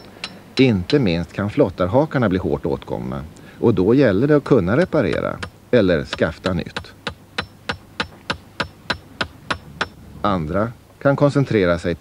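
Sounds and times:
hammer driving nail with metallic ring: 0:00.0 - 0:01.0, 0:05.1 - 0:10.0.

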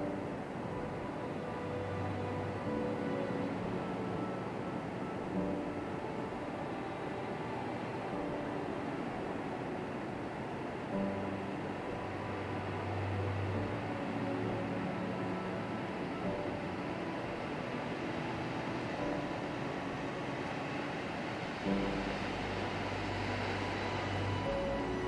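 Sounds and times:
piano and string music: 0:00.0 - 0:25.0.

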